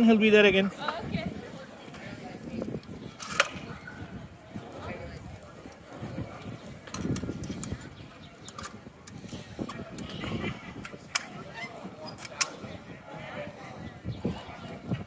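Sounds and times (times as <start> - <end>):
crowd voices: 0.0 - 15.0.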